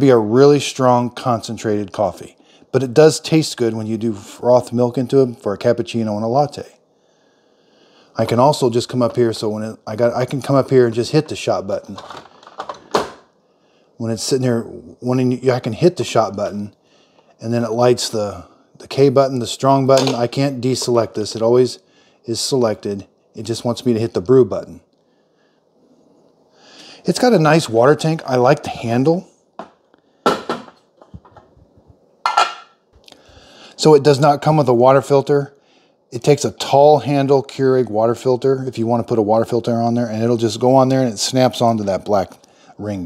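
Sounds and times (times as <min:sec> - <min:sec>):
plastic parts clacking: 0:11.9 - 0:13.2.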